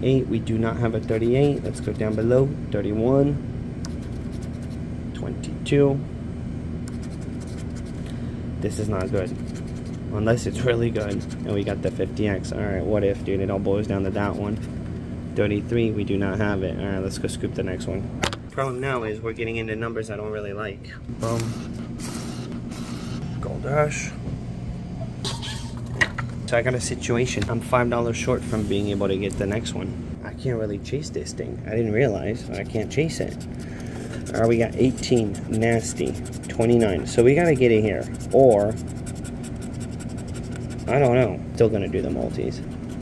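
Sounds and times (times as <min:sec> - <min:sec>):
steady low hum: 0:00.0 - 0:43.0
scratching lottery ticket: 0:01.1 - 0:02.4, 0:03.9 - 0:04.8, 0:06.9 - 0:08.0, 0:08.9 - 0:11.9, 0:32.4 - 0:43.0.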